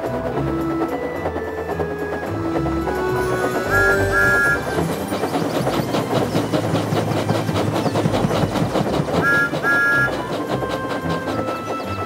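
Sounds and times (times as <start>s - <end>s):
steam train rattling: 0.0s - 12.0s
two-note train whistle: 0.6s - 5.0s, 9.2s - 12.0s.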